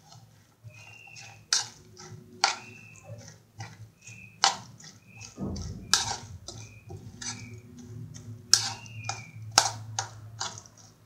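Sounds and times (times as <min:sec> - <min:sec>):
hand slapping salad: 0:00.0 - 0:11.0
wet squelching of salad mixing: 0:00.0 - 0:11.0.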